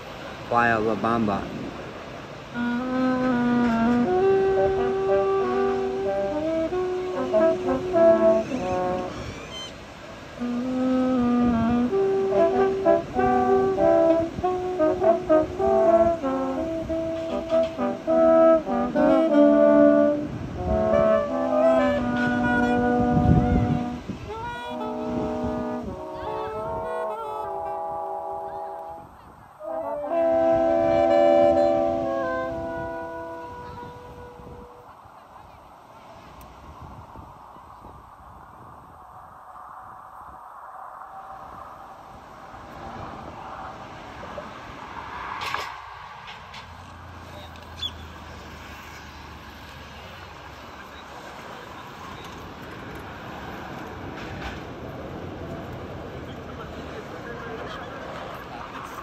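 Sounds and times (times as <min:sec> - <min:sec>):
road traffic passing: 0:00.0 - 0:59.0
reed or keyboard chords: 0:02.6 - 0:09.1, 0:10.4 - 0:34.8
vehicle passing by: 0:39.5 - 0:59.0.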